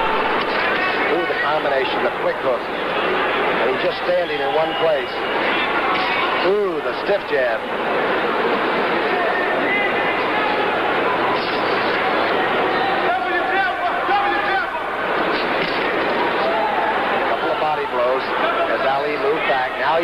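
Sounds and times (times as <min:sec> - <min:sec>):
crowd hubbub: 0:00.0 - 0:20.0.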